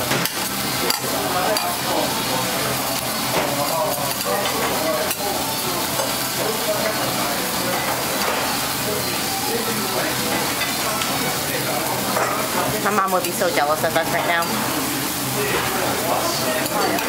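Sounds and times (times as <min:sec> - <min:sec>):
food sizzling on a griddle: 0:00.0 - 0:17.0.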